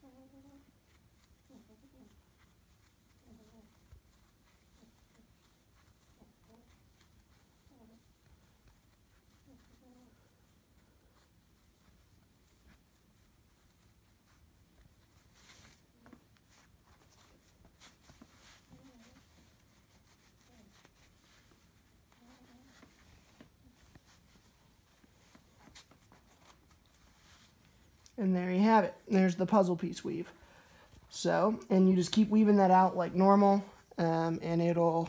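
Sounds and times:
cord rustling in hands: 0:00.0 - 0:34.0.

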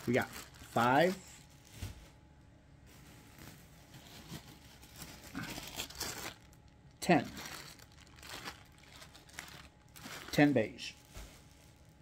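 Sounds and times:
plastic bag crinkling: 0:00.0 - 0:01.8, 0:02.9 - 0:12.0.

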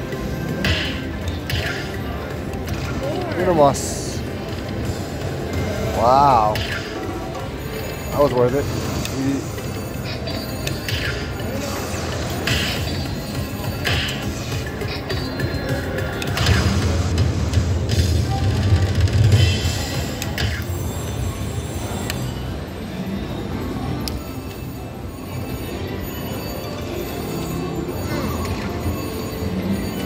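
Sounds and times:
slot machine win music: 0:23.7 - 0:30.0.

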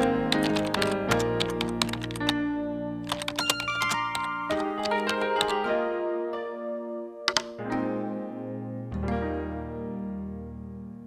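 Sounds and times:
computer keyboard typing: 0:00.0 - 0:02.4, 0:03.0 - 0:05.6, 0:07.3 - 0:07.6
background music with held notes: 0:00.0 - 0:11.0.

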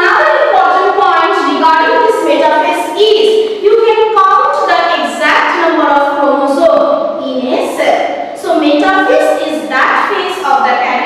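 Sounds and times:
woman speaking in sing-song way: 0:00.0 - 0:11.0.

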